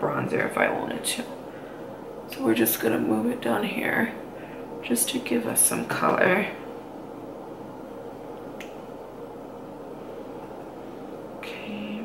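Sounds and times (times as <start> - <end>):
low room hiss: 0.0 - 12.0.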